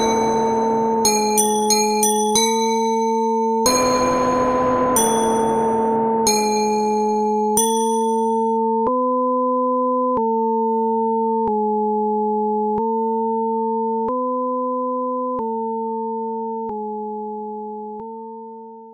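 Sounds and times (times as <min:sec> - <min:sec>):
electronic synth tone: 0:00.0 - 0:01.1, 0:03.7 - 0:08.6.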